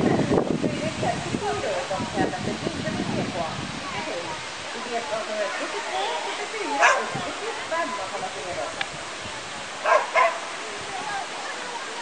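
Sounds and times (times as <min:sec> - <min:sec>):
dog barking: 0:06.8 - 0:07.1, 0:09.8 - 0:10.4.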